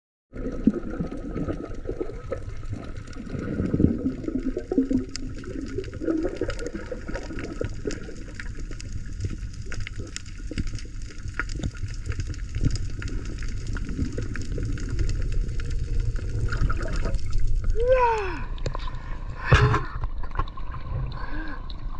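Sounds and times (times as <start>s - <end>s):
muffled underwater rush: 0.3s - 21.9s
small sharp underwater clicks: 4.8s - 17.7s.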